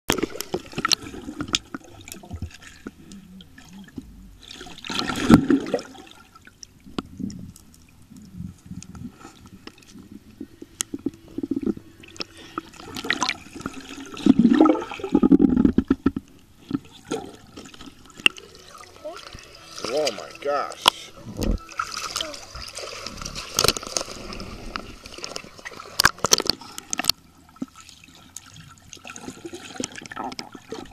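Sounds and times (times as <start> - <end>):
muffled underwater rushing and bubbling: 0.1 - 30.9
underwater clicks: 23.3 - 27.7.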